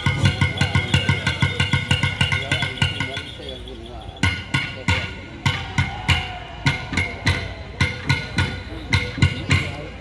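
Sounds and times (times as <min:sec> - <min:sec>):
drum strokes: 0:00.0 - 0:10.0.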